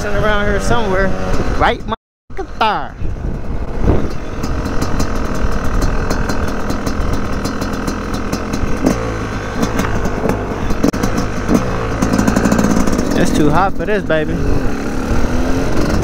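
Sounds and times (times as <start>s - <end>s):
wind noise on microphone: 0.0s - 7.3s
dirt bike engine revving: 0.0s - 16.0s.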